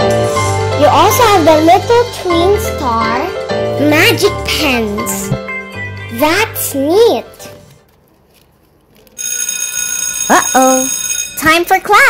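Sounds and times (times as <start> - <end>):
school bell ringing: 9.2 - 11.9.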